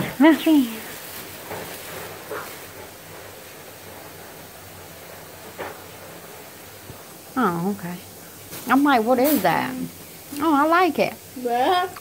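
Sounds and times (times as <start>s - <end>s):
plastic bag rustling: 0.0s - 11.1s.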